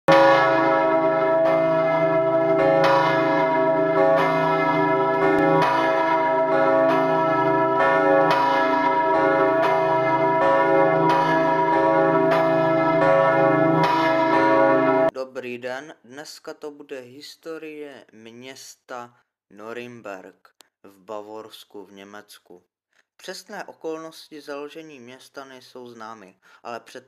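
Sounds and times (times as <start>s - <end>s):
church bells pealing: 0.1s - 15.1s.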